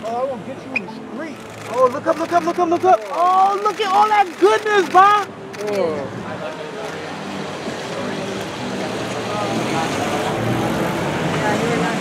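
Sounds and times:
street traffic: 0.0 - 12.0
car driving past: 6.7 - 12.0.

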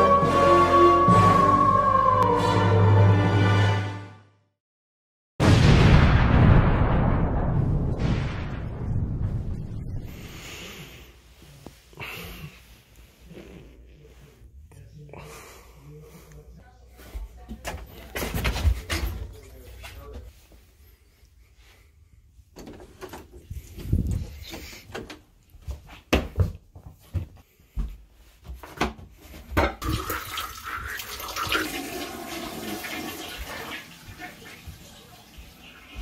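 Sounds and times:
water gurgling in toilet bowl: 29.8 - 36.0.

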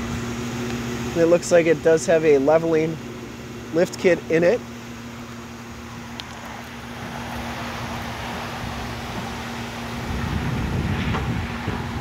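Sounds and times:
steady low hum: 0.0 - 12.0
wind buffeting microphone: 7.0 - 12.0.

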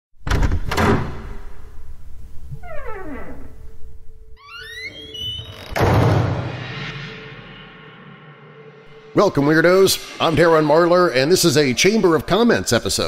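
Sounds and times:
heavy wooden door thuds: 0.2 - 1.5, 5.7 - 6.4
loud door boom: 0.2 - 1.6, 4.8 - 9.2
door creaking: 0.2 - 7.3.

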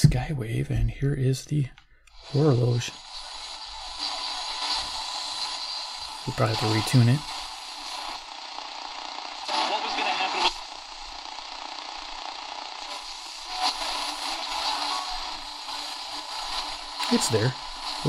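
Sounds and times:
radio static and hiss: 0.0 - 18.0
distant radio station audio: 2.2 - 8.4, 9.2 - 11.9, 12.7 - 18.0.

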